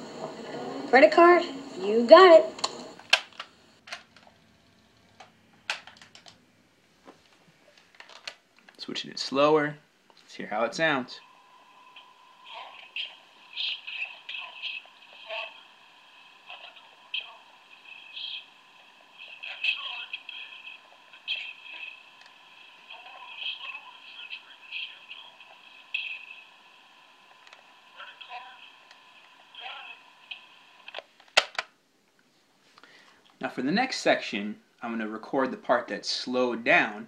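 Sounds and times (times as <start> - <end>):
faint tape hiss: 0.0 - 37.0.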